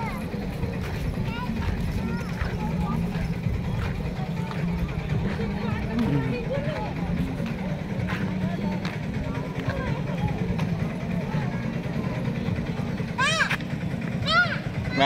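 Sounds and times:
quiet child voices: 0.0 - 13.6
steady low rumble: 0.0 - 15.0.

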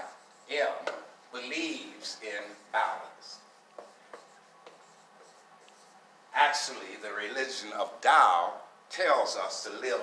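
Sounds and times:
marker writing on whiteboard: 0.0 - 6.8.

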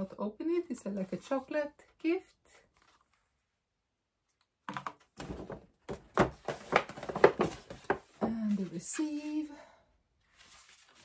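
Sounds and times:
paper and cardboard crinkling: 5.2 - 9.5, 10.2 - 11.0.

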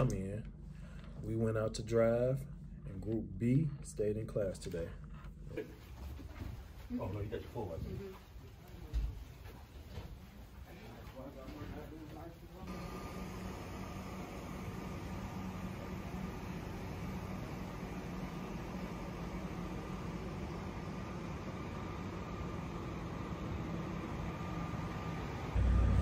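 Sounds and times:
faint steady whine: 0.0 - 26.0.

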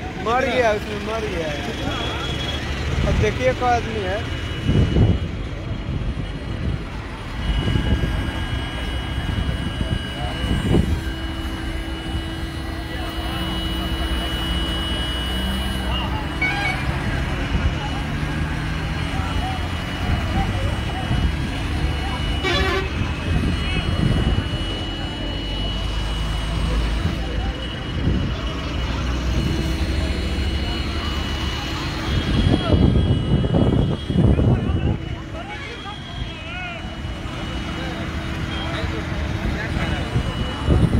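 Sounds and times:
heavy vehicles running: 0.0 - 40.9
people talking nearby: 0.0 - 40.9
vehicle horns tooting: 0.0 - 40.9.

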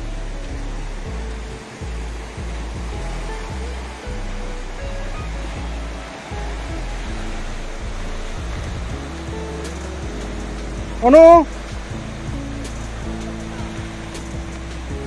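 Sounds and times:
background music with bass: 0.0 - 15.0
sea surf breaking on rocks: 0.1 - 15.0.

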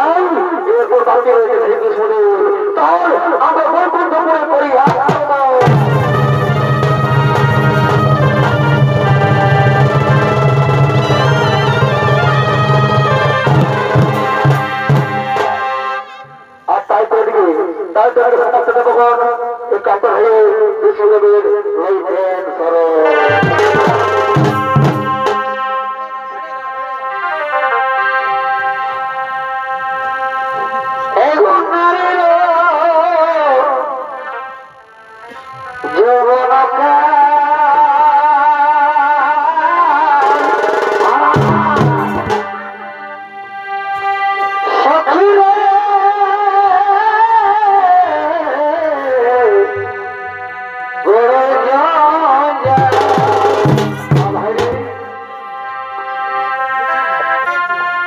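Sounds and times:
drumming bursts: 4.8 - 16.6, 23.2 - 25.7, 40.2 - 43.2, 52.6 - 55.2
reed pipe melody: 4.8 - 17.8, 22.4 - 58.0
steady held tones: 5.6 - 16.7.

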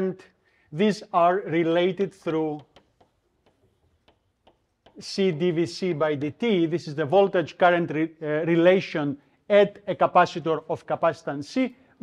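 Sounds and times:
chalk tapping on blackboard: 1.7 - 5.5.

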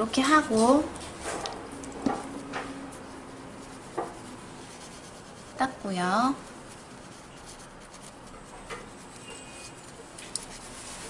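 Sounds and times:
paper wipe rubbing: 0.0 - 11.0.

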